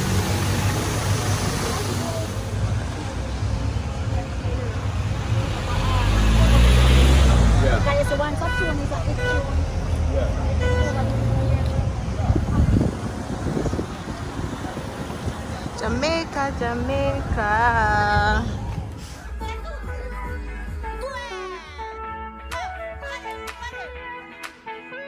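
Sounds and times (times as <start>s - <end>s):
passing vehicles rumbling: 0.0s - 21.0s.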